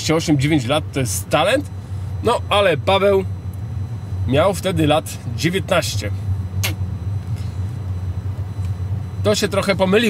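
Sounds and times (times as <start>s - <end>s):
car cabin drone: 0.0s - 10.0s.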